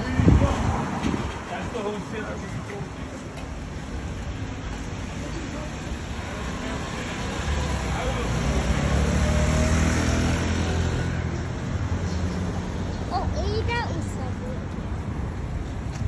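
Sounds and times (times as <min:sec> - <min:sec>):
traffic noise: 0:00.0 - 0:16.0
motorbike passing: 0:06.2 - 0:13.7.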